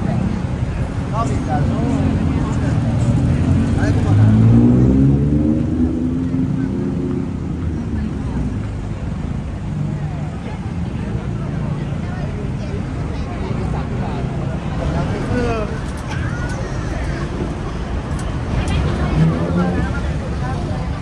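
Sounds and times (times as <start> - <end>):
street traffic hum: 0.0 - 21.0.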